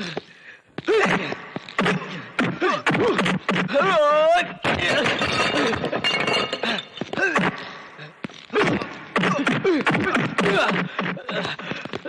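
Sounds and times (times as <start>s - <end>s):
glasses and crockery crashing: 4.7s - 7.1s.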